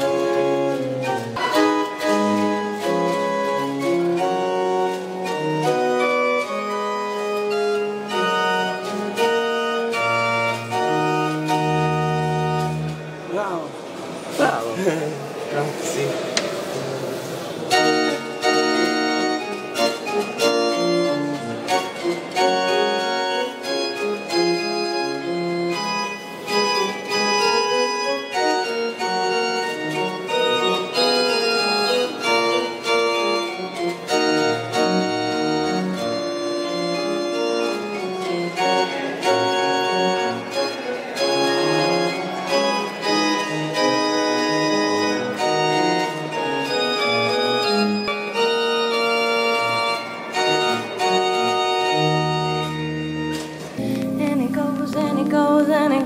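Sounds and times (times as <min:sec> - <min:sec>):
pipe organ playing chords: 0:00.0 - 0:14.4, 0:15.1 - 0:55.8.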